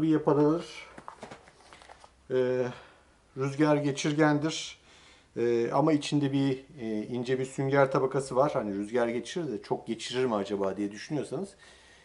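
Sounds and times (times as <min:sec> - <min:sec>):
fabric rustling and light clicks: 0:00.3 - 0:02.2
man saying eh: 0:02.3 - 0:04.8.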